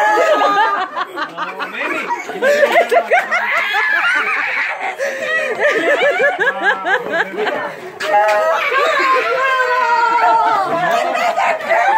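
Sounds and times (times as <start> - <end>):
excited voices talking: 0.0 - 11.9.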